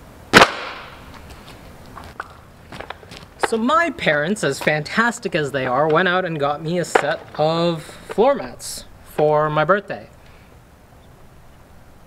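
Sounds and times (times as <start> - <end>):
plastic mat smacking on asphalt: 0.4 - 8.3.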